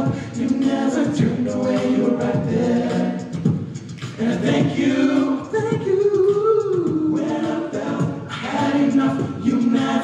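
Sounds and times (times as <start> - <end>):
male a cappella group singing: 0.0 - 10.0
vocal percussion: 0.0 - 10.0.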